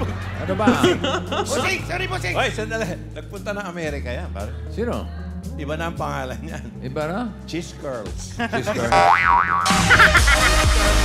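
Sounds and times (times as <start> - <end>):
loud dense music: 8.5 - 11.0
wobbling comic tone: 8.9 - 10.3.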